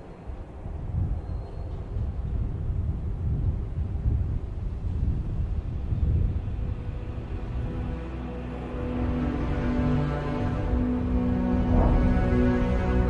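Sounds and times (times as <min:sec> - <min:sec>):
deep uneven rumble: 0:10.2 - 0:13.0.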